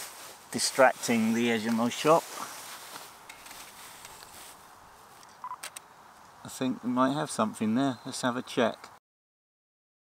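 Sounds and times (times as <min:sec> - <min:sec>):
camera beep: 0:05.4 - 0:05.7.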